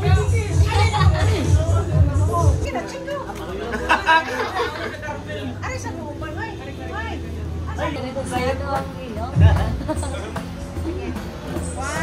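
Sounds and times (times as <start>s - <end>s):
background music with a beat: 0.0s - 3.5s, 8.2s - 12.0s
people chattering: 0.0s - 12.0s.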